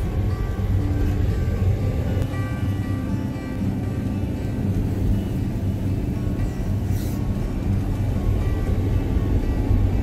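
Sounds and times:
background music: 0:00.0 - 0:10.0
road and engine rumble: 0:00.0 - 0:10.0.

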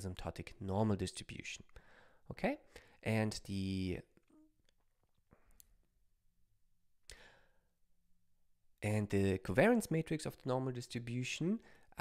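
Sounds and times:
man speaking: 0:00.0 - 0:01.7, 0:02.3 - 0:04.3, 0:08.8 - 0:12.0.

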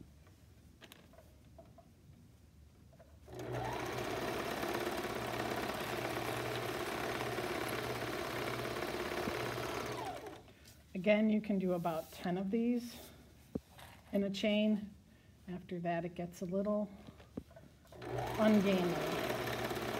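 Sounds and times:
overlock sewing machine running: 0:03.3 - 0:10.4, 0:17.9 - 0:19.9.

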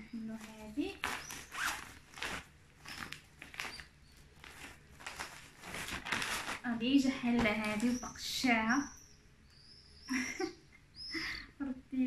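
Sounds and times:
plastic packaging crinkling: 0:00.1 - 0:08.2.

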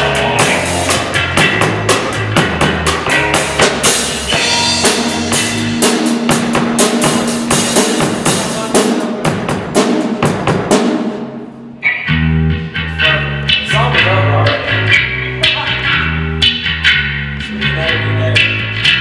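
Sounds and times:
electric bass: 0:00.0 - 0:09.7, 0:11.3 - 0:19.0
rock drum kit playing: 0:00.0 - 0:19.0.

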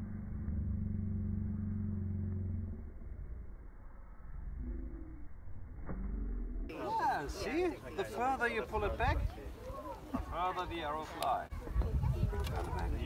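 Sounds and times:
low engine-like hum: 0:00.0 - 0:06.7.

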